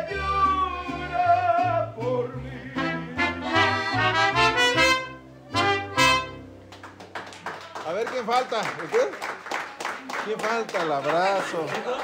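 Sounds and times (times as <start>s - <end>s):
piano accordion chords: 2.7s - 6.6s
hand claps: 6.7s - 12.0s.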